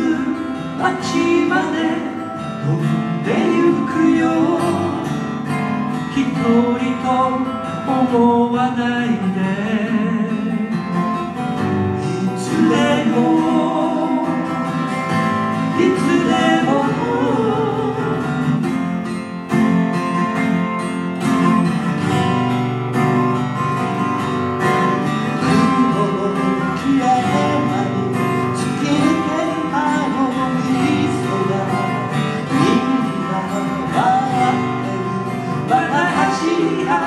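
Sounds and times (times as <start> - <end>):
man singing: 0.0 - 11.1, 12.0 - 14.9, 15.6 - 18.6, 25.3 - 37.0
acoustic guitars strummed and picked: 0.0 - 37.0.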